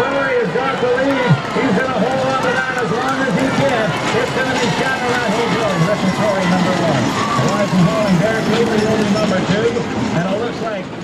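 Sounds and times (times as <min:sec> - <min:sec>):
race announcer calling: 0:00.0 - 0:11.0
steady background noise: 0:00.0 - 0:11.0.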